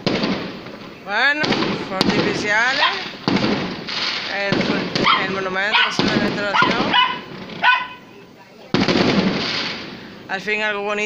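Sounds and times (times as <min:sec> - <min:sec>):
distant firework bang: 0:00.0 - 0:08.1, 0:08.7 - 0:10.3
dog barking: 0:02.8 - 0:03.0, 0:05.0 - 0:08.1.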